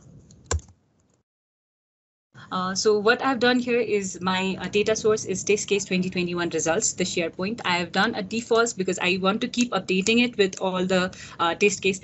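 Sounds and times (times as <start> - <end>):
keyboard key clicks: 0.4 - 0.8.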